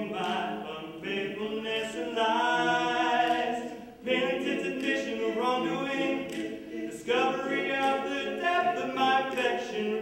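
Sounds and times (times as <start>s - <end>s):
male vocal quartet singing: 0.0s - 10.0s.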